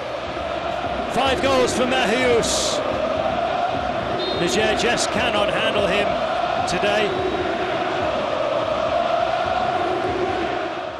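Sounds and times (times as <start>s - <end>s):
crowd chanting in unison: 0.0s - 10.9s.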